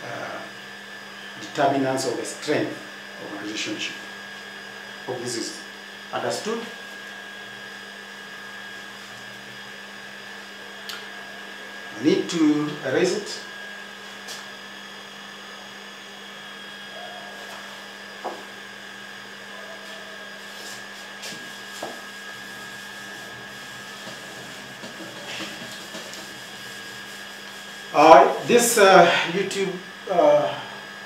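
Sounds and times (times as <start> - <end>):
steady room hum: 0.0 - 31.0
eraser rubbing on whiteboard: 19.8 - 28.0.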